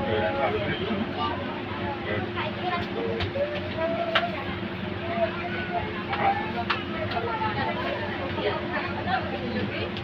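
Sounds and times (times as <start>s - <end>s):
bus cabin drone: 0.0s - 10.0s
passengers talking: 0.0s - 10.0s.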